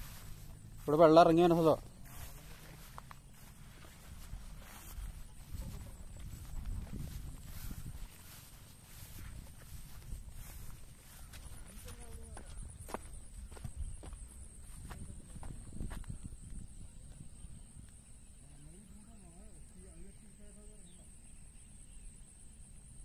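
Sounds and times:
footsteps on rock and grass: 0.0 - 17.3
wind rumble on microphone: 1.9 - 18.5.

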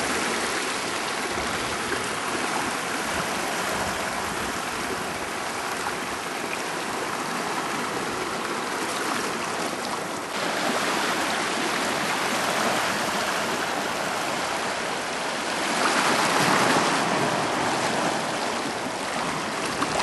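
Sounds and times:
ocean water washing over rocks: 0.0 - 20.0.

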